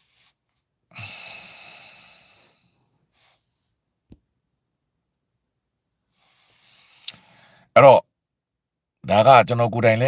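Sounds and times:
man breathing out through nose: 0.9 - 3.4, 6.2 - 7.7.

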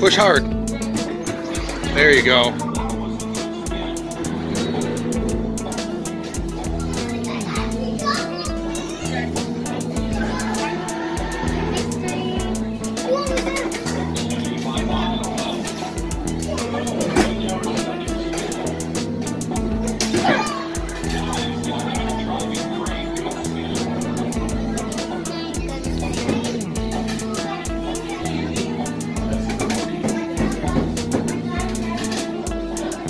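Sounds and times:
guitar music over steady beat: 0.0 - 33.0.

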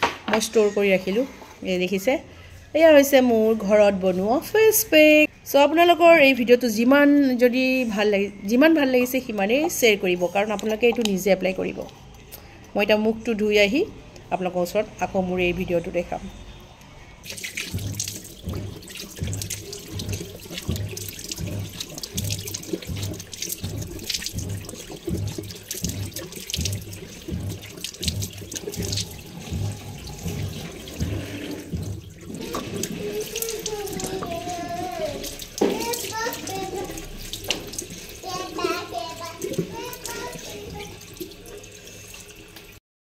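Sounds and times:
running water: 6.1 - 42.8
hands splashing water on face: 17.2 - 41.4.

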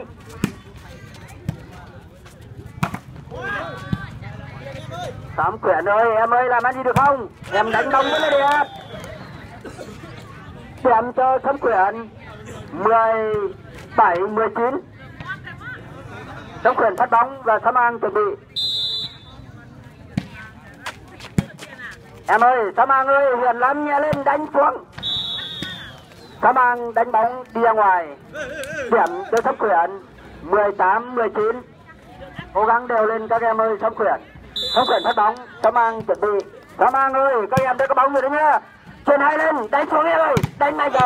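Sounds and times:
faint crowd voices: 0.0 - 41.0
volleyball slaps: 2.8 - 3.3, 40.3 - 41.0
volleyball struck by hands: 2.8 - 3.3, 20.1 - 21.8, 40.3 - 41.0
spectators calling out: 7.6 - 9.6.

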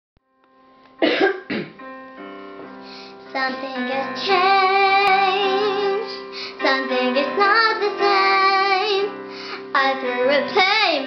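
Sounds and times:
keyboard backing track: 0.3 - 11.0
girl coughing: 1.0 - 1.8.

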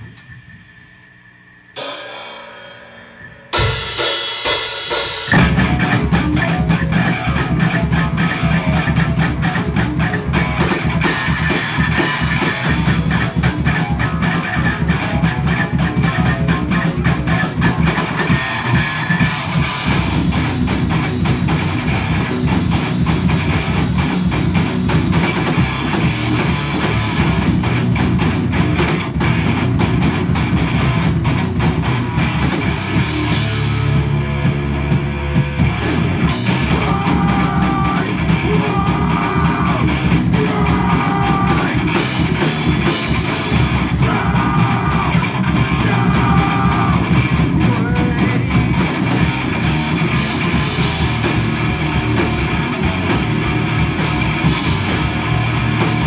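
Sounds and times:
bass guitar: 1.7 - 56.0
drum kit with cymbals: 1.7 - 56.0
electric guitar: 5.3 - 56.0.

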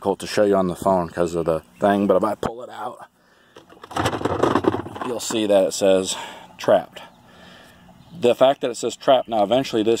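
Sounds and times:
robot mower wheels rumbling: 3.8 - 5.4.

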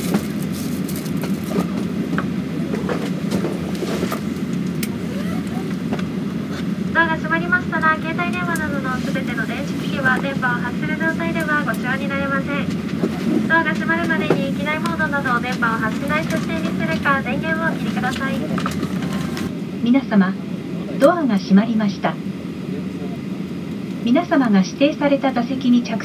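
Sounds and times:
airport terminal rumble: 0.0 - 26.0
voice over public address: 13.5 - 18.7.

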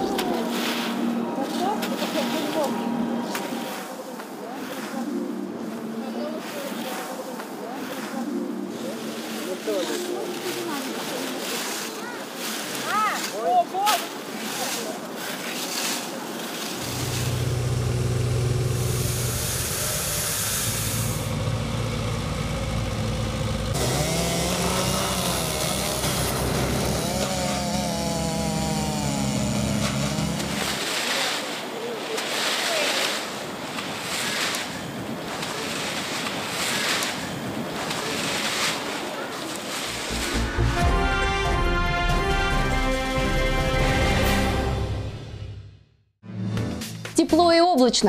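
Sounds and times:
rakes scraping dry leaves: 0.0 - 21.3, 23.7 - 40.7
small engine running: 16.8 - 31.0
chainsaw cutting wood: 16.8 - 31.2.

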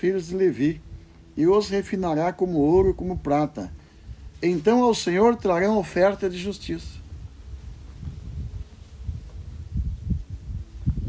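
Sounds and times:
faint hum: 0.0 - 11.0
low thumps on clip-on microphone: 7.0 - 11.0.

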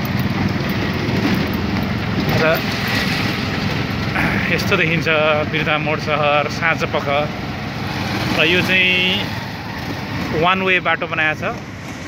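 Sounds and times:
auto-rickshaw engine running: 0.0 - 12.0.

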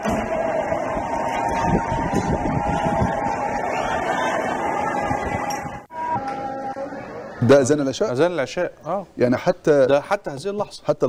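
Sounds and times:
street noise rumble: 0.0 - 8.4.

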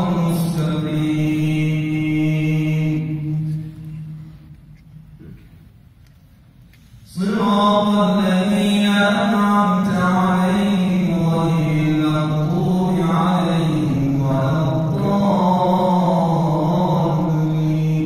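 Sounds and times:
man chanting into a microphone: 0.0 - 4.2, 7.0 - 18.0.

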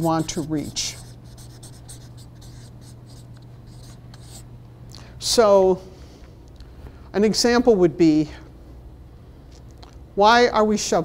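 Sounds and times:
marker writing on paper: 0.0 - 4.4
steady low hum: 0.0 - 11.0.

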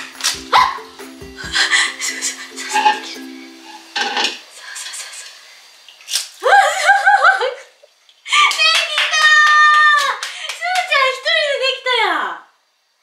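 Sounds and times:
background music: 0.0 - 4.1.

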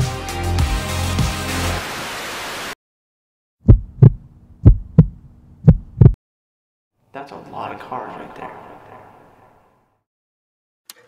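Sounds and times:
heartbeat double thumps: 3.6 - 6.2.

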